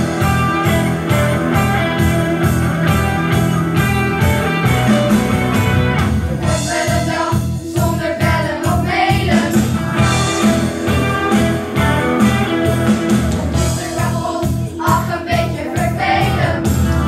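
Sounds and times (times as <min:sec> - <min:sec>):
guitars playing a song: 0:00.0 - 0:07.0, 0:09.1 - 0:14.8
voices singing: 0:06.4 - 0:12.7, 0:13.5 - 0:16.8.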